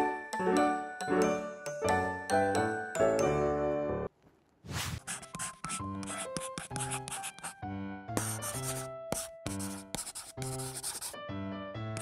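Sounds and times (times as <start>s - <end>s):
light background music: 0.0s - 4.1s, 5.0s - 12.0s
crayon scribbling on paper: 4.7s - 7.6s, 8.2s - 11.2s.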